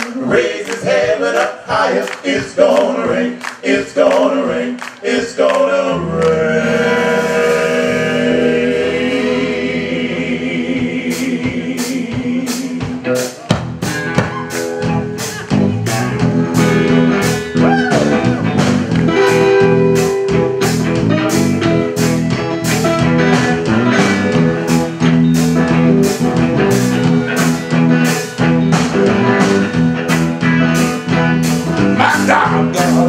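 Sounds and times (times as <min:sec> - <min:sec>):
male vocal group harmonizing: 0:00.0 - 0:13.3, 0:31.8 - 0:33.0
gospel blues band with electric guitar: 0:00.0 - 0:33.0.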